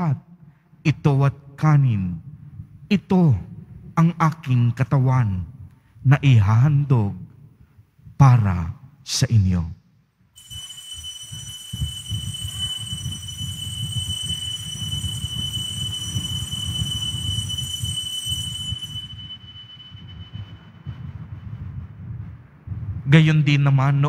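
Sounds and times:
altar bell ringing: 10.4s - 21.3s.

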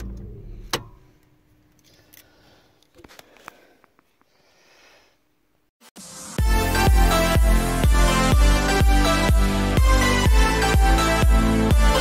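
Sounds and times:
low steady hum in car: 0.0s - 2.4s.

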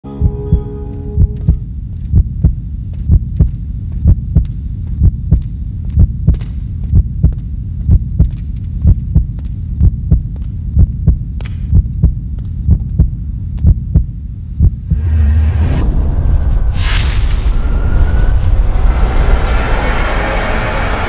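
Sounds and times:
steady low hum: 0.0s - 21.0s
heartbeat thumps: 0.1s - 15.1s.

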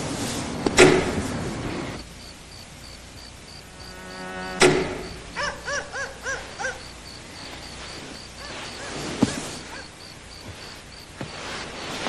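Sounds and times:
low buzz: 1.6s - 8.4s
crickets chirping: 1.6s - 12.0s
short high rising and falling calls: 3.6s - 9.1s
sudden thump: 4.5s - 5.4s.

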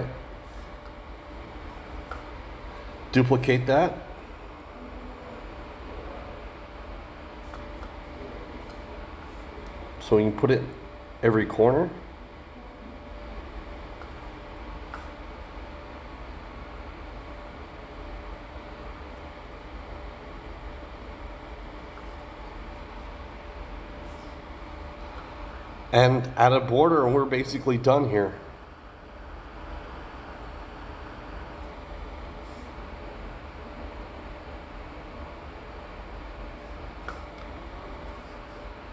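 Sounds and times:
room hum and hiss: 0.0s - 38.9s.

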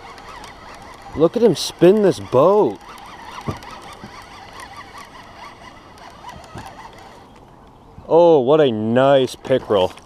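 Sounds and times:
fishing reel whirring: 0.0s - 7.4s
sharp reel clicks: 0.0s - 7.5s.

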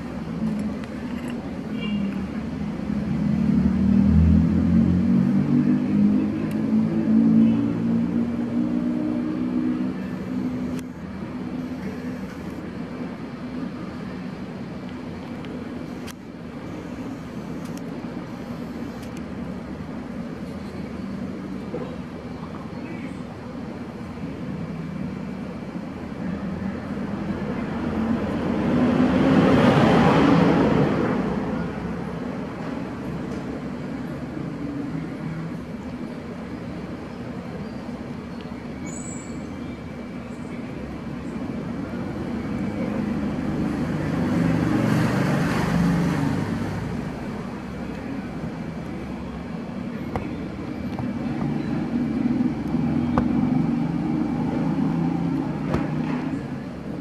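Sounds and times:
vehicle passing: 2.5s - 12.5s, 42.8s - 57.0s
engine running low: 39.6s - 57.0s.

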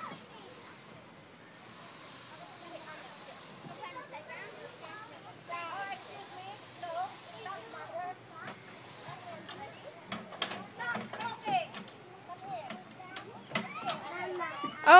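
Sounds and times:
children calling and chattering: 0.0s - 14.9s.

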